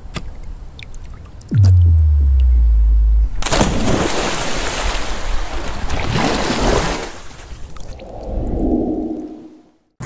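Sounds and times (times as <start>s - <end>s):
muffled underwater sound: 1.5s - 3.4s.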